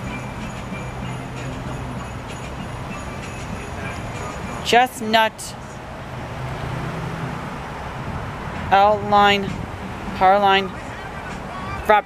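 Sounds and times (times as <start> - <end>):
low vehicle engine hum: 0.0 - 12.0
road traffic: 0.0 - 12.0.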